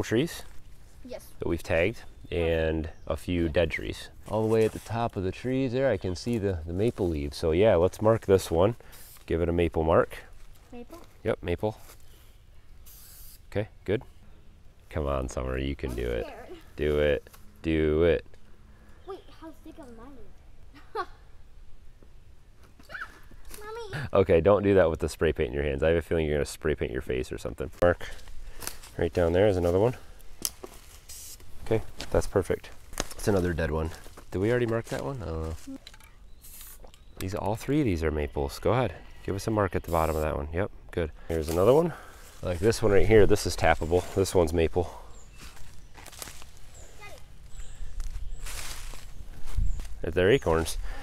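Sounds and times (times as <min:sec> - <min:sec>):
quiet outdoor background: 0:00.0 - 0:51.0
child making vocal sounds: 0:15.9 - 0:16.7, 0:22.9 - 0:24.0, 0:46.9 - 0:47.3
footsteps through dry leaves: 0:28.1 - 0:33.2, 0:41.3 - 0:42.9, 0:45.2 - 0:50.0.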